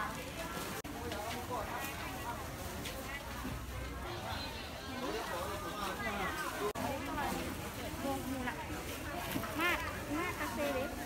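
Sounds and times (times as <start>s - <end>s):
people talking chatter: 0.0s - 11.0s.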